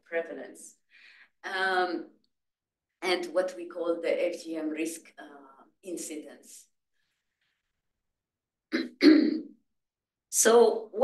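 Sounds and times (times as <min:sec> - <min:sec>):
woman clearing her throat: 0:08.7 - 0:09.5.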